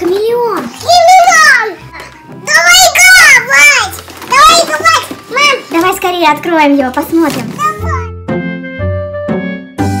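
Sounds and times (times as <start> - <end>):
young child's voice: 0.0 - 6.3, 7.6 - 8.1.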